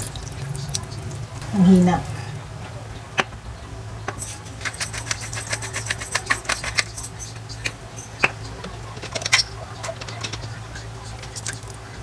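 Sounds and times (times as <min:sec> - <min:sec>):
steady low hum: 0:00.0 - 0:12.0
pepper grinder cracking peppercorns: 0:04.2 - 0:07.1.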